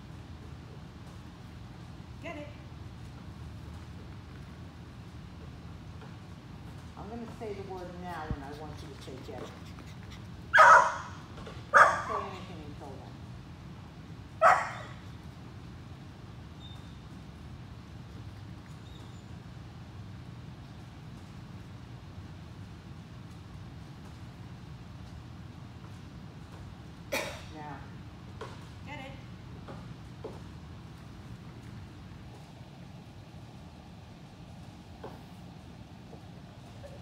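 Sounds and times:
steady low hum: 0.0 - 37.0
small dog yapping: 10.5 - 12.2, 14.4 - 15.0
person coughing or short utterance: 27.1 - 27.5.

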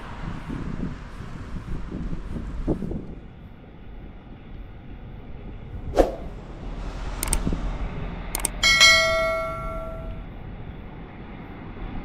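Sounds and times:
computer mouse clicks: 7.2 - 7.4, 8.4 - 8.6
bell ding: 8.4 - 10.2.

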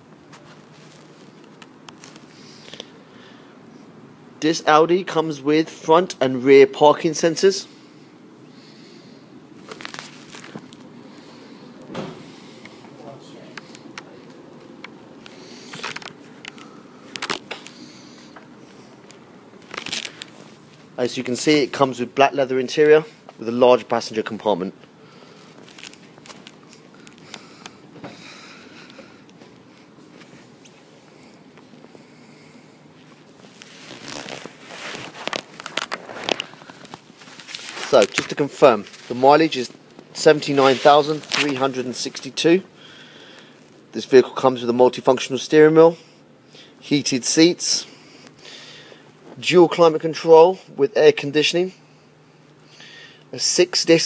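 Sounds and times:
phone and clothing rustling: 0.1 - 3.0, 9.5 - 21.9, 24.8 - 42.5.

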